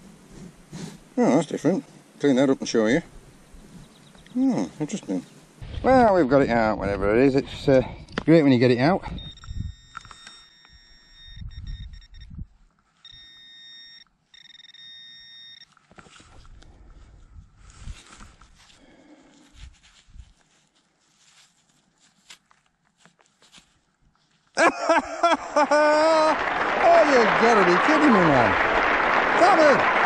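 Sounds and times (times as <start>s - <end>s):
pinpointer high electronic tone: 9.2s - 12.4s, 13.0s - 15.8s
gloved fingers rustling soil: 15.7s - 24.6s.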